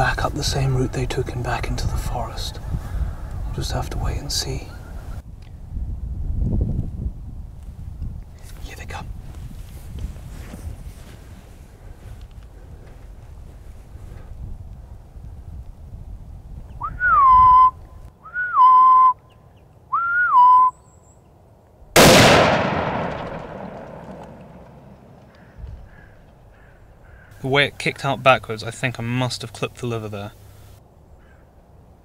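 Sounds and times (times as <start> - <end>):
rising whistles: 16.8 - 21.1
rifle shot: 22.0 - 25.4.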